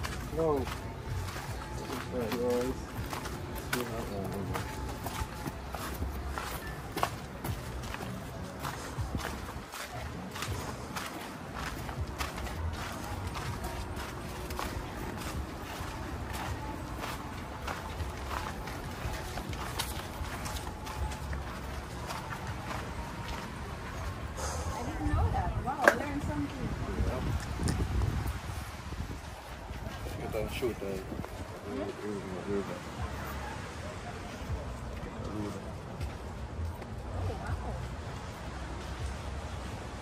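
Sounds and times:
footsteps on sandy dirt path: 0.0 - 40.0.

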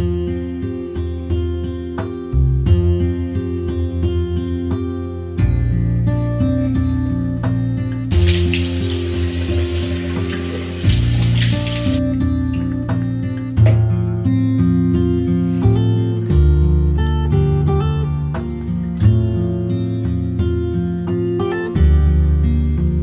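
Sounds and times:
acoustic guitar music: 0.0 - 23.0
tap running: 8.2 - 12.0.

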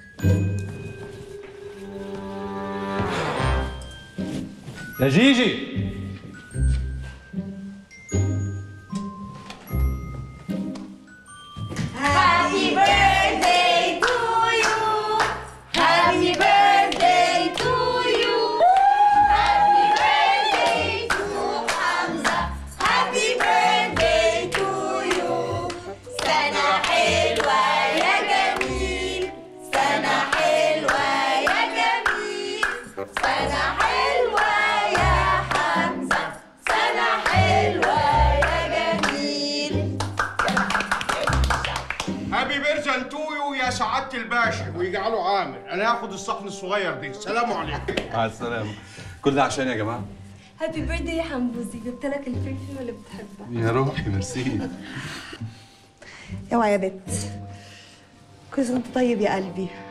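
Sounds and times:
musical backing: 0.0 - 59.9
rhythmic hand-clapping: 11.7 - 42.4, 47.9 - 48.1
group singing festive song: 11.9 - 40.0.

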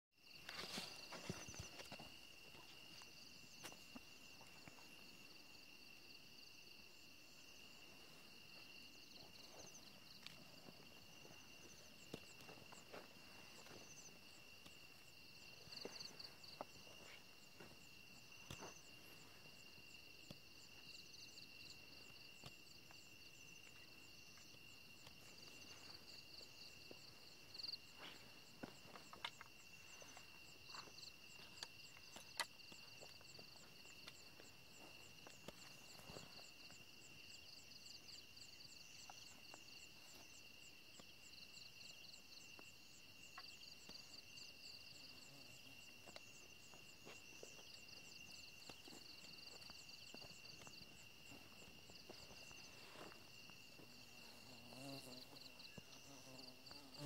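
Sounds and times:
cricket chirps: 0.2 - 57.0.

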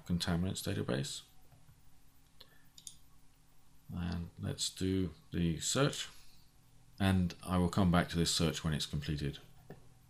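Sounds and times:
low room hum: 0.0 - 10.0
computer mouse clicks: 2.2 - 3.0.

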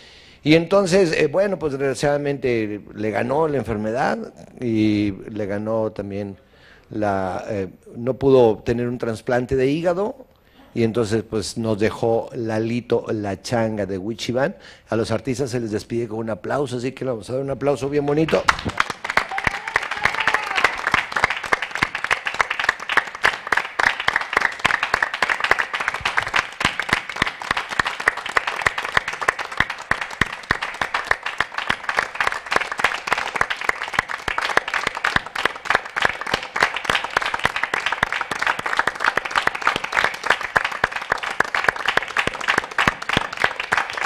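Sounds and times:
group applause: 18.1 - 44.0.

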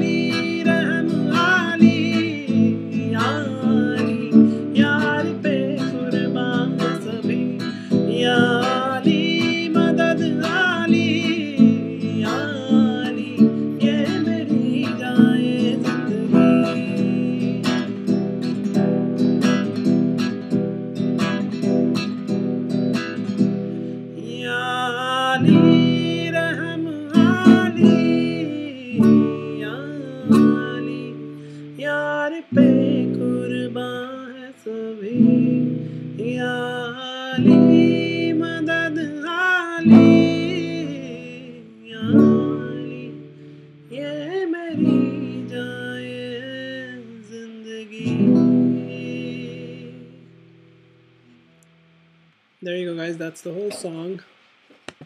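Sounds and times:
man singing: 0.0 - 19.9, 24.0 - 50.4
acoustic guitar strumming: 0.0 - 54.2.

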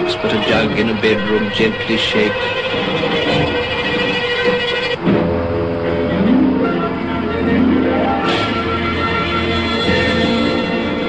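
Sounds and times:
film soundtrack music: 0.0 - 11.0
train running rumble: 0.0 - 11.0.

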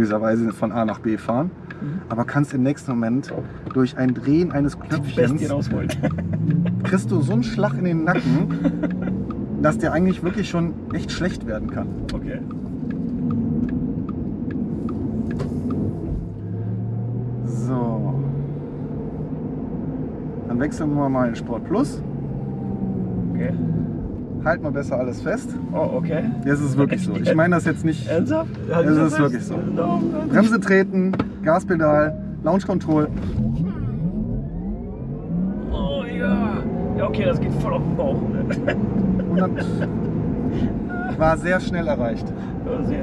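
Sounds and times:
road and tyre rumble: 0.0 - 43.0
light ticking clicks: 3.2 - 4.6, 10.8 - 15.9
electric car whine climbing in pitch: 31.6 - 38.1.

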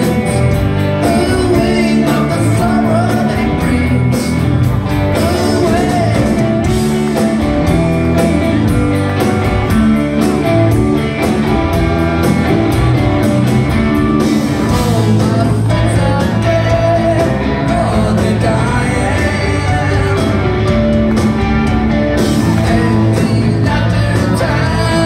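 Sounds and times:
bass guitar: 0.0 - 25.0
drums: 0.0 - 25.0
electric guitars: 0.0 - 25.0.

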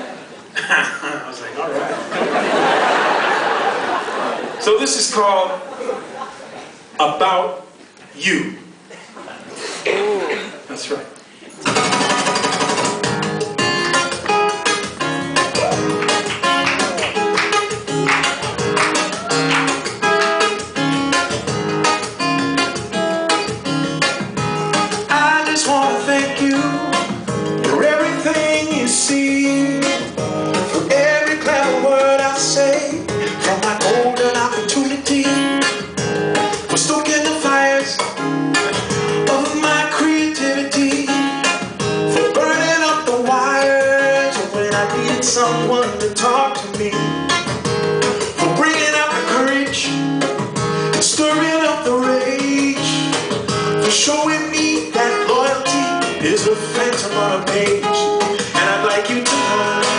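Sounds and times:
acoustic guitar fast percussive strumming: 11.6 - 59.9.

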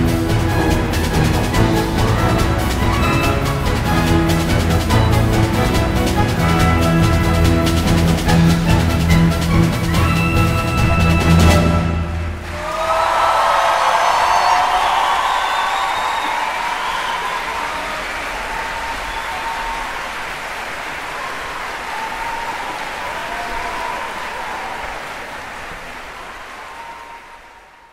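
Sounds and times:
audience applauding: 0.0 - 27.9
people cheering: 0.0 - 27.9.

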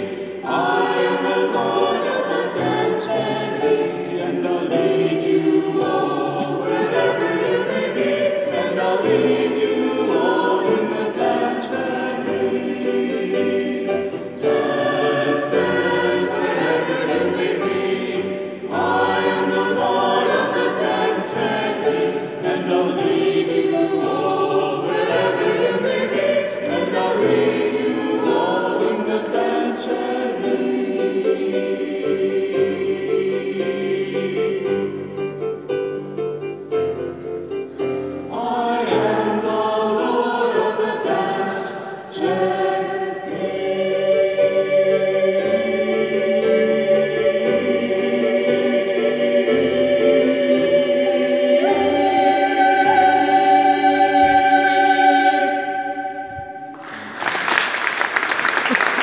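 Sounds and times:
mixed choir singing: 0.0 - 59.0.

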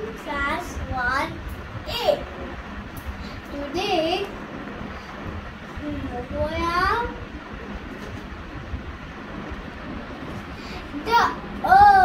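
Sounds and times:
child's voice: 0.0 - 2.3, 3.5 - 4.3, 5.8 - 7.2, 10.9 - 12.0
low rumbling: 0.0 - 12.0.

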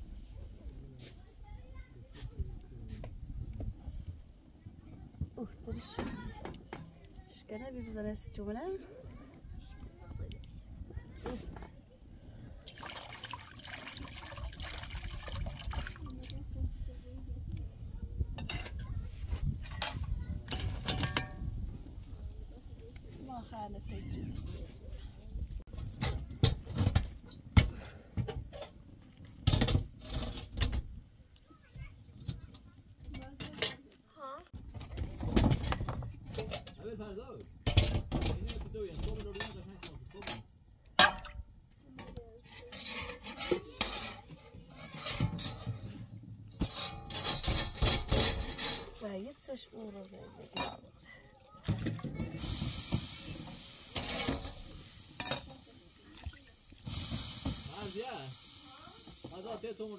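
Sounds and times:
metal spatula scraping griddle: 29.5 - 30.8, 42.4 - 49.0, 52.4 - 55.6.

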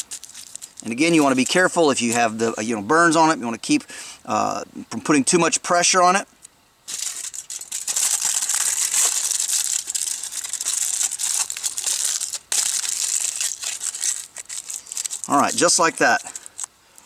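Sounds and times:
aluminum foil crinkling: 0.0 - 2.5, 6.8 - 17.0.

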